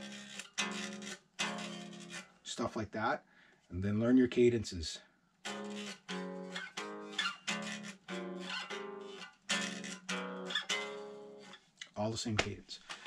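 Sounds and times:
electric guitar chords: 5.4 - 11.5.

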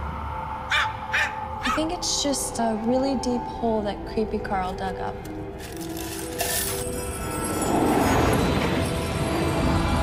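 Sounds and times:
sustained music tones: 0.0 - 10.0
metal chain clinking and rattling: 5.6 - 10.0.

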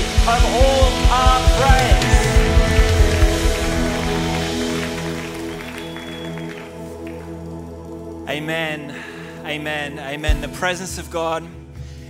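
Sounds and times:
drum beat: 0.0 - 5.8
live band playing worship song: 0.0 - 8.1
held chord ringing: 0.0 - 8.2.

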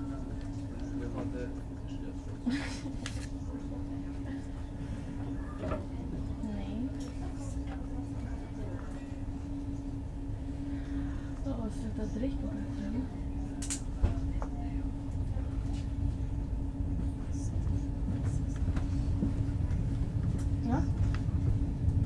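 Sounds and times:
train rumbling inside carriage: 0.0 - 22.0.

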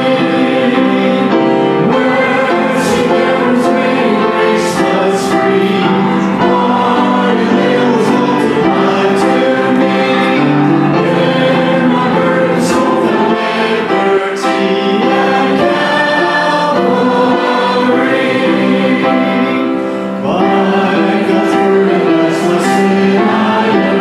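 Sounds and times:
congregation singing: 0.0 - 24.0
musical accompaniment: 0.0 - 24.0
vocalists singing a hymn: 0.0 - 24.0.

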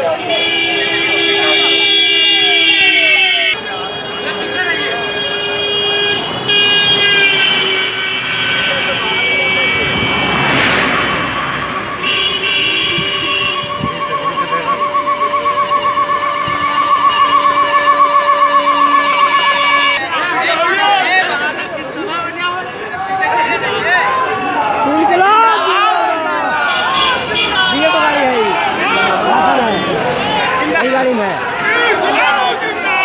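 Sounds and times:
steady horn tones: 0.0 - 21.7
vehicle passing: 6.2 - 20.0
fast-warbling siren: 10.0 - 20.0.

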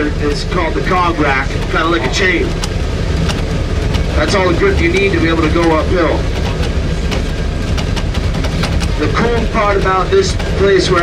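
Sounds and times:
train rumbling on rail: 0.0 - 11.0
metallic clicks and clanks: 0.3 - 11.0.

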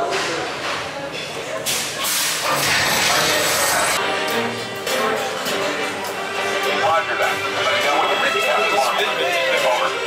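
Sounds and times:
loud rushing hiss: 2.0 - 4.0.

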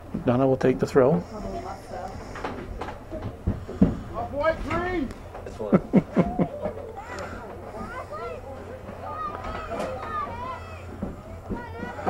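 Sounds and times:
girls shouting: 6.9 - 12.0.

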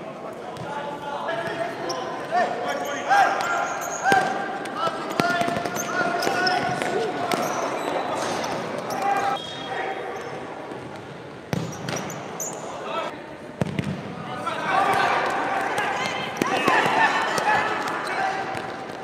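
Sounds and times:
shoes squeaking on court floor: 1.4 - 12.8
ball kicks: 11.5 - 12.1, 13.6 - 14.1
people calling out: 14.4 - 18.6.

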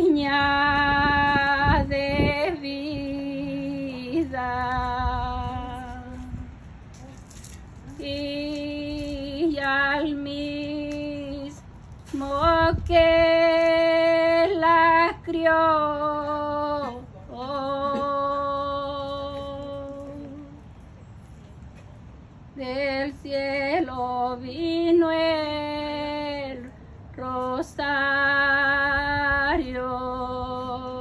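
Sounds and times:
woman singing a hymn: 0.0 - 6.6, 7.8 - 20.7, 22.5 - 31.0.

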